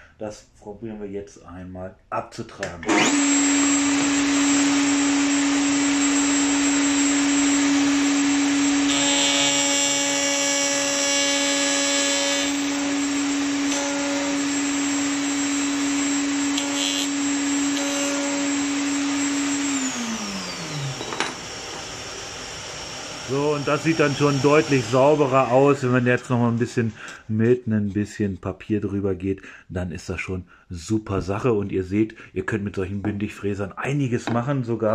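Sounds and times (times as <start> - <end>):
router bit cutting wood: 2.8 - 27.2
router running: 2.9 - 26.6
router spinning down: 2.9 - 26.6.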